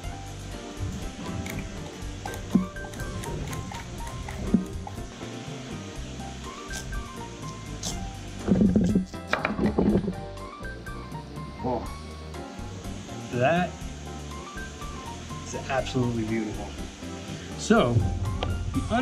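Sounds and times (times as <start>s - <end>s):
background music: 0.0s - 19.0s
papaya being cut open: 0.9s - 5.1s, 6.6s - 8.1s.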